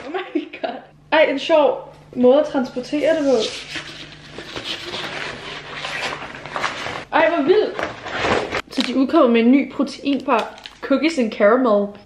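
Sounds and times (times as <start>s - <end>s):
paper rustling and crackling: 3.1s - 7.1s.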